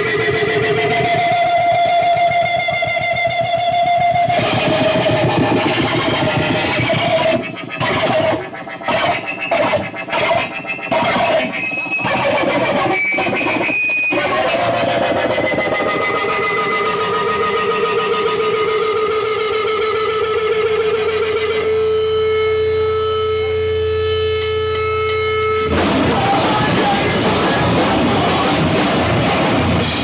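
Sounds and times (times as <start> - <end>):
guitar feedback drone: 0.0 - 30.0
stuttering electric guitar bursts: 0.0 - 30.0.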